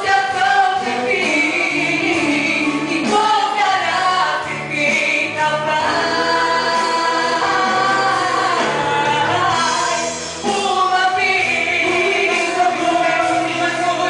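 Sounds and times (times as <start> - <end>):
amplified musical accompaniment: 0.0 - 14.0
woman singing into a microphone: 0.0 - 14.0.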